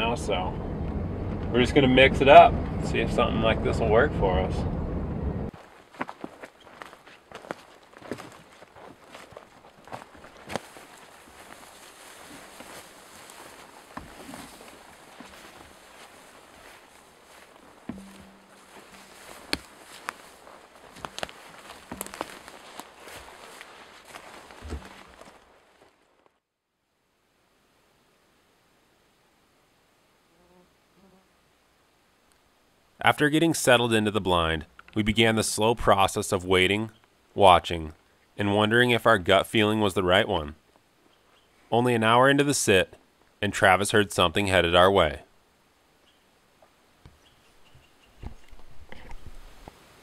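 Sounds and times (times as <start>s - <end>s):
footsteps in dry grass: 5.5s - 26.4s
twigs snapping: 17.9s - 26.4s.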